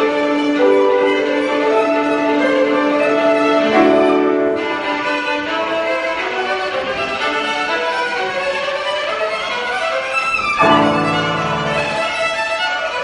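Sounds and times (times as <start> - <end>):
piano accompaniment: 0.0 - 13.0
violin melody: 0.0 - 13.0.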